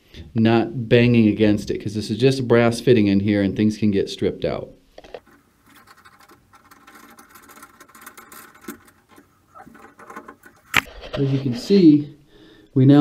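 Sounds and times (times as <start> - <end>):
metal scraping and clicking: 5.0 - 11.7.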